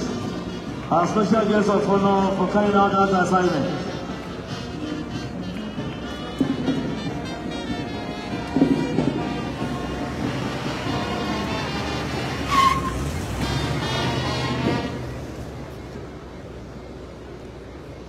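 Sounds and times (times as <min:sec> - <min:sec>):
parade brass band music: 0:00.0 - 0:15.3
open-air ground noise: 0:00.0 - 0:18.0.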